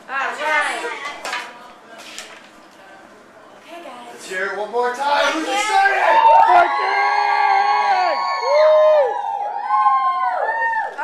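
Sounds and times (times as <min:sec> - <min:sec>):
children cheering and yelling: 0:05.5 - 0:11.0.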